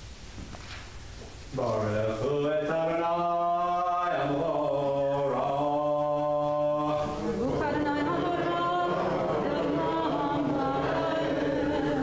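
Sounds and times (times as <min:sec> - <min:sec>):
man chanting a prayer: 0:01.5 - 0:12.0.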